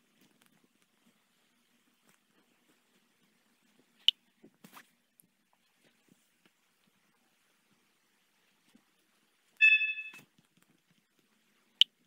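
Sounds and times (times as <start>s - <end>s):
phone message chime: 9.6s - 10.2s.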